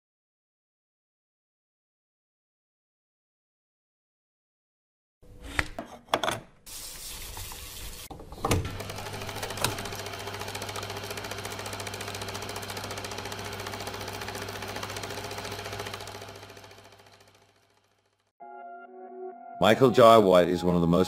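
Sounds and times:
film projector clattering: 0:08.5 - 0:18.3.

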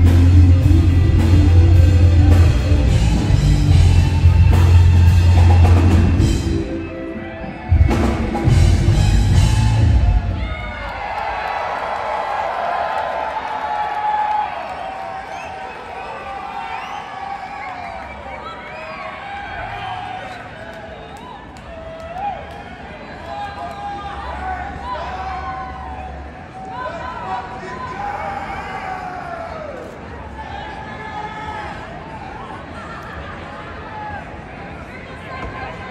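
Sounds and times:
live band with heavy drums: 0:00.0 - 0:06.9, 0:07.6 - 0:10.7
crowd voices: 0:00.0 - 0:35.9.

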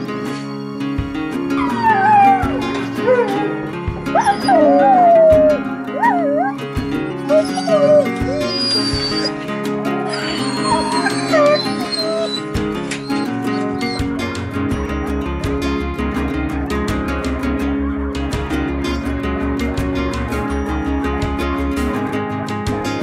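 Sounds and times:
guitar music: 0:00.0 - 0:23.0
dogs howling: 0:01.4 - 0:14.2.

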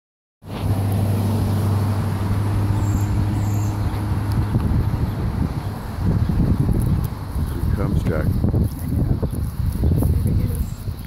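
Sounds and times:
engine running with low hum: 0:00.5 - 0:10.2.

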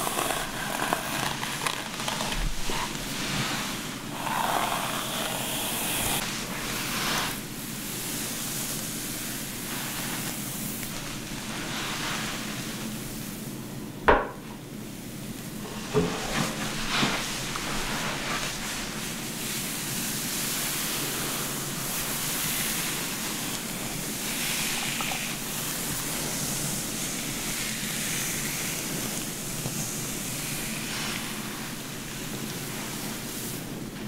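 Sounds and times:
fingers rustling through hair: 0:00.0 - 0:13.0, 0:16.4 - 0:33.8.

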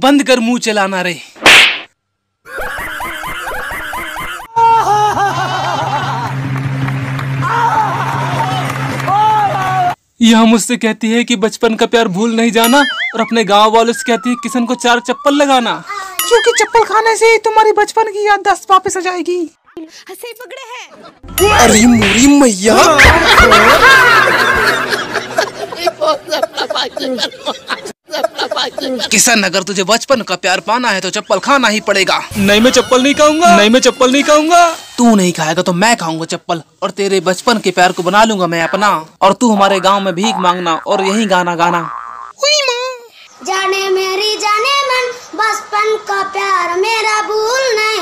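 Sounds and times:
slap sound effect: 0:01.4 - 0:02.0
man laughing loudly: 0:02.5 - 0:06.4, 0:22.7 - 0:29.1
warbling comic sound effect: 0:12.6 - 0:17.4, 0:38.5 - 0:42.3.

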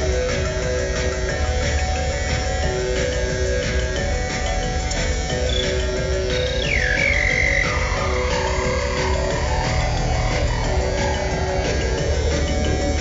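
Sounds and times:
modular synthesizer music: 0:00.0 - 0:13.0
high synth tone dropping in pitch: 0:02.6 - 0:13.0.

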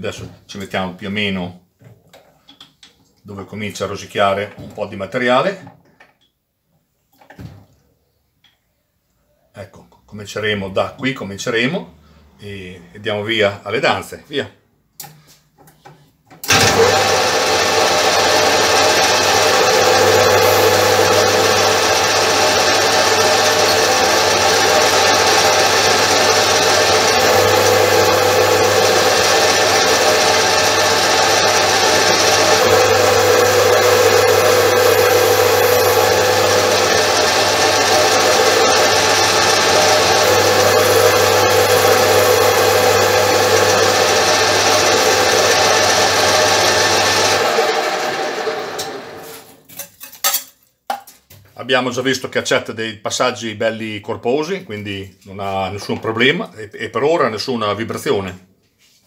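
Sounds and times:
metal lathe cutting steel: 0:16.5 - 0:49.3.

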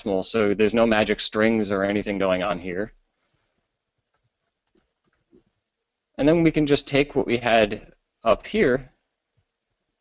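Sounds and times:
keyboard keys typing: 0:04.0 - 0:05.5.

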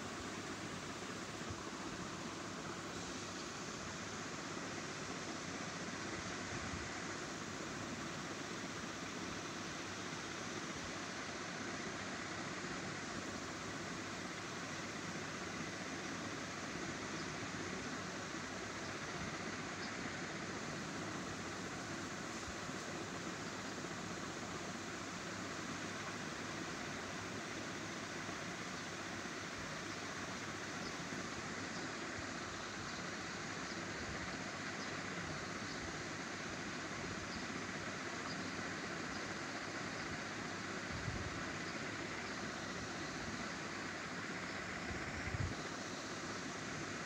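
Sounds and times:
steady background hiss: 0:00.0 - 0:47.0.

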